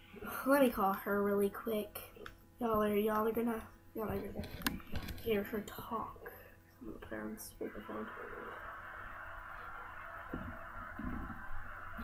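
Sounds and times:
phone speaker hiss: 7.6 - 12.0.

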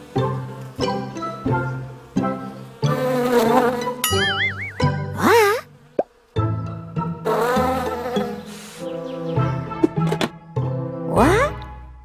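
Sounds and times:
cartoon bee buzzing: 0.1 - 9.5
wobbling whistle: 4.0 - 4.9.

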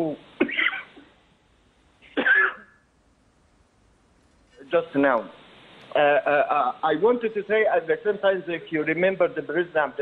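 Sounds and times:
cough over telephone line: 0.4 - 1.1, 2.0 - 2.8.

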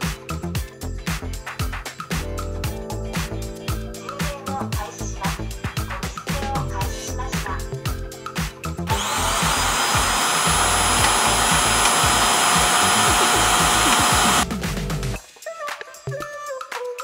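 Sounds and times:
background music: 0.0 - 17.0
suction motor whining: 8.9 - 14.4.

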